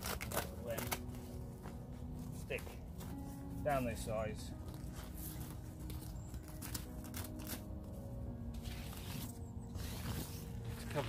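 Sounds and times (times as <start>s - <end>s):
fabric and plastic crinkling: 0.0s - 3.9s, 4.5s - 8.0s, 8.6s - 11.0s.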